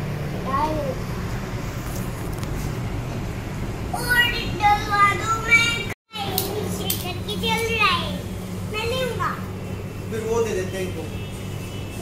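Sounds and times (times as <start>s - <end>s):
young boy's voice: 0.4s - 1.0s, 3.9s - 9.5s.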